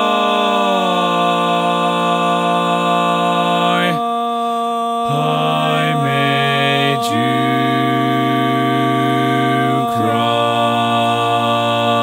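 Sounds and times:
barbershop harmony singing: 0:00.0 - 0:12.0.

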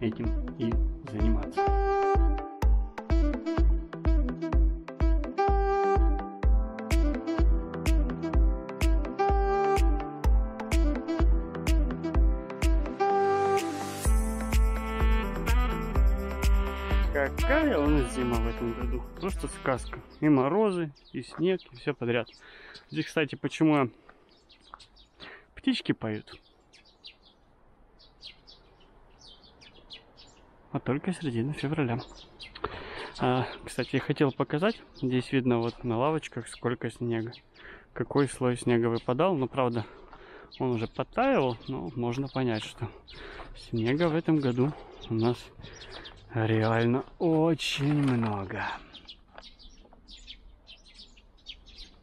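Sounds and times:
songbirds chirping: 0:00.0 - 0:52.0.

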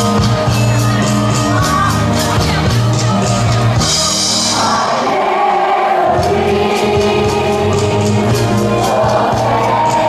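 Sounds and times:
backing music with percussion beat: 0:00.0 - 0:05.1, 0:06.1 - 0:10.0
group of voices singing: 0:03.6 - 0:10.0.

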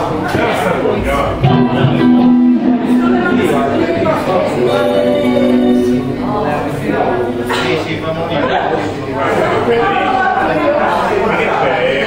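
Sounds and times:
room chatter: 0:00.0 - 0:12.0
electric guitar held note: 0:01.3 - 0:07.3.

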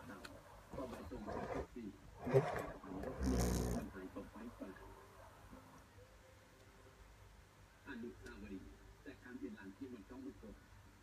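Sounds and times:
rough low vocal growl: 0:01.0 - 0:03.9.

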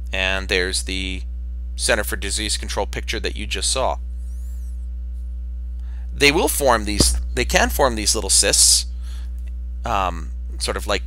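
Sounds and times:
electrical hum: 0:00.0 - 0:11.0.

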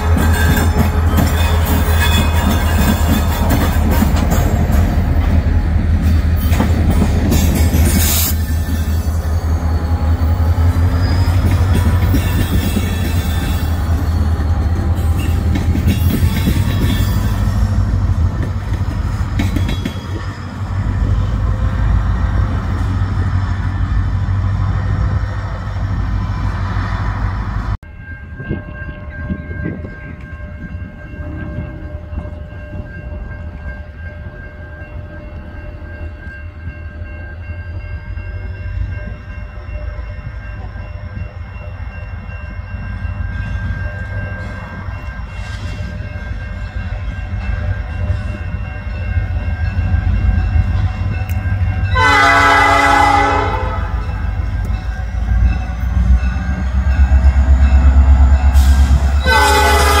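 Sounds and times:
diesel locomotive engine rumble: 0:00.0 - 1:00.0
train horn blast: 0:51.9 - 0:54.2, 0:58.2 - 1:00.0.

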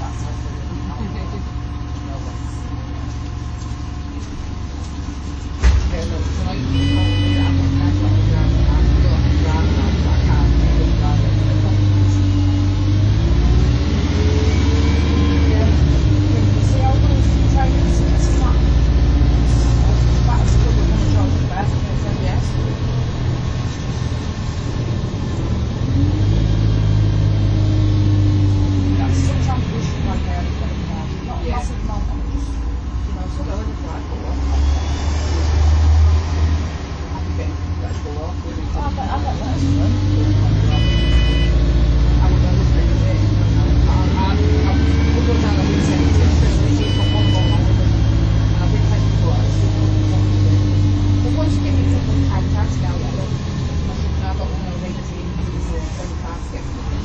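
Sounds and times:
bus diesel engine: 0:00.0 - 0:57.0
thump: 0:05.6 - 0:06.0
short electronic beep: 0:06.7 - 0:07.6, 0:40.7 - 0:41.6, 0:46.8 - 0:47.8.

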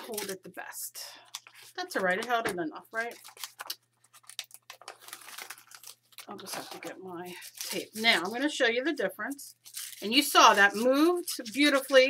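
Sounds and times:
paper crinkling and rustling: 0:00.0 - 0:00.4, 0:01.3 - 0:08.5, 0:09.6 - 0:12.0.

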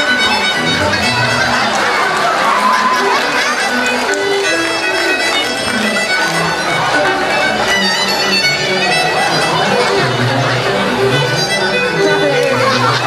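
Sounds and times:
fiddle dance tune: 0:00.0 - 0:13.0.

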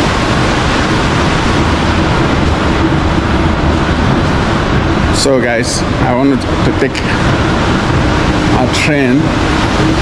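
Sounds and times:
steady loud rushing noise: 0:00.0 - 0:10.0.

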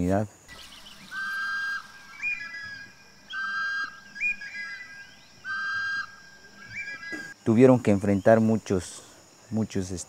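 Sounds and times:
bird whistling: 0:00.5 - 0:07.4.

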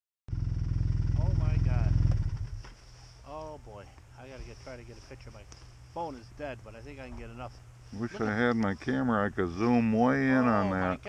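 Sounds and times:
vehicle engine idling: 0:00.3 - 0:11.0
person speaking: 0:03.3 - 0:11.0.

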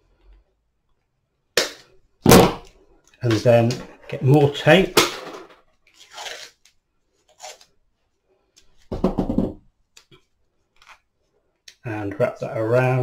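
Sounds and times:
masking tape peeling and tearing: 0:06.0 - 0:06.6.

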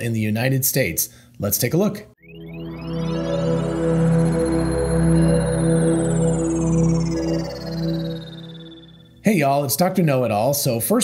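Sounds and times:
intro music chord with gliding tones: 0:02.2 - 0:09.2.

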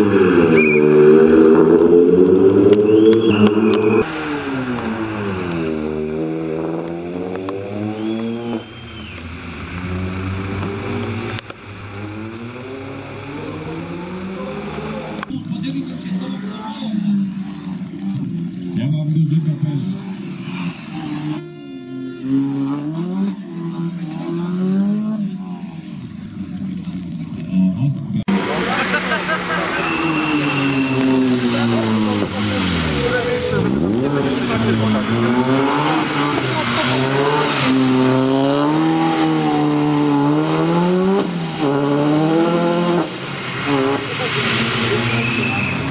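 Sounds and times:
rally car engine revving: 0:00.0 - 0:45.9.

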